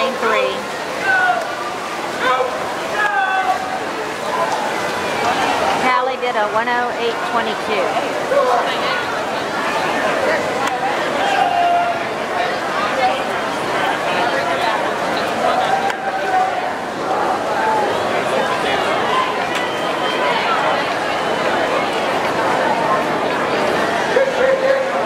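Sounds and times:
crowd chattering and cheering: 0.0s - 25.0s.

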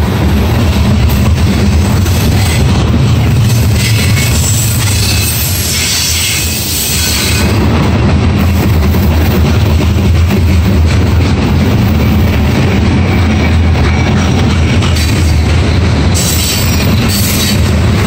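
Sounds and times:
freight train wheels rumbling: 0.0s - 18.0s.

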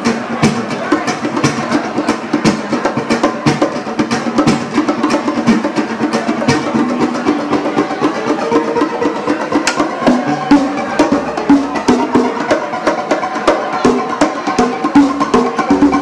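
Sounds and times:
classical guitar plucked notes: 0.0s - 16.0s
hand drums slapped: 0.0s - 16.0s.

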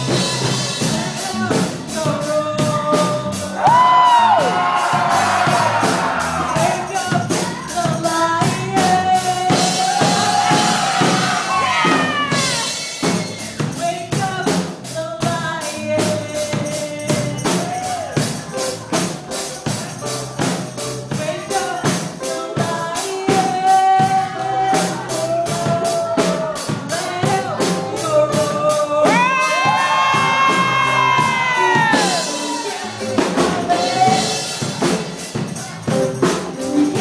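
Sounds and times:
band with fast percussion beat: 0.0s - 37.0s
woman singing into microphone: 6.6s - 12.7s, 21.1s - 32.2s.

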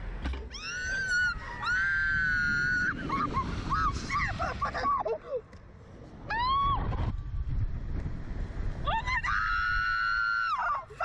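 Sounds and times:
wind rumbling on microphone: 0.0s - 11.0s
women screaming: 0.5s - 5.2s, 6.3s - 6.8s, 8.9s - 11.0s.

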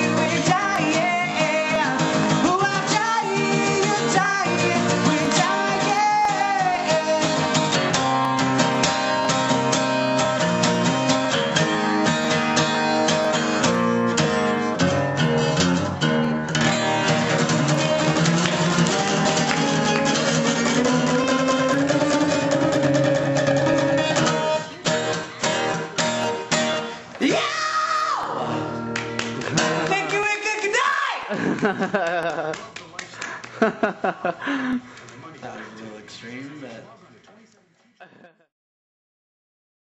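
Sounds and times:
man singing: 0.0s - 7.8s, 17.7s - 24.1s
acoustic guitar strumming: 0.0s - 27.5s, 28.3s - 30.8s.

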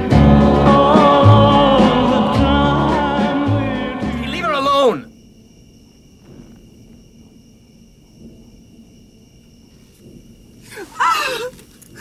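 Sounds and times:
cricket chorus trilling: 0.0s - 12.0s.

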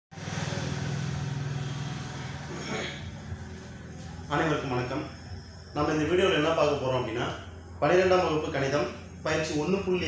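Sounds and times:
steady low hum: 0.2s - 10.0s.

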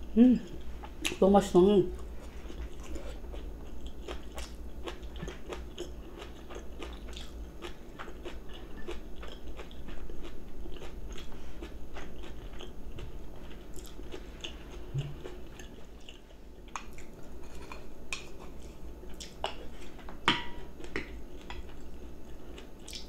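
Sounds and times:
close-up chewing with crisp crunches: 2.0s - 20.1s, 20.8s - 23.0s.

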